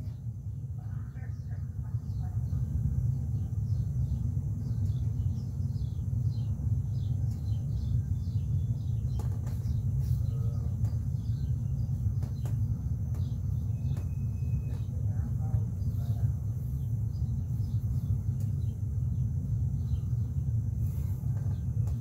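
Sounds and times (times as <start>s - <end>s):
small birds chirping: 0.0s - 22.0s
steady low rumble: 0.0s - 22.0s.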